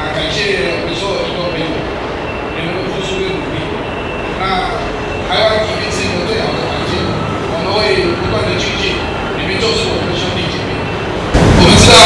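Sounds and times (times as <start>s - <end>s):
man speaking into a microphone: 0.0s - 1.8s, 2.6s - 3.8s, 4.4s - 10.8s, 11.4s - 12.0s
loud background noise: 0.0s - 12.0s.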